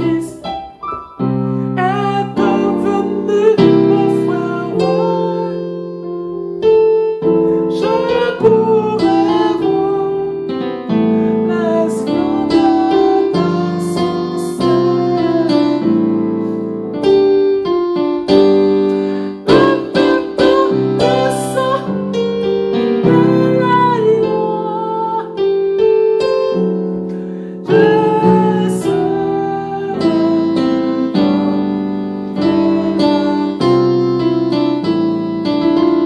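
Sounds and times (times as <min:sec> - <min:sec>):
keyboard playing gospel chords: 0:00.0 - 0:36.0.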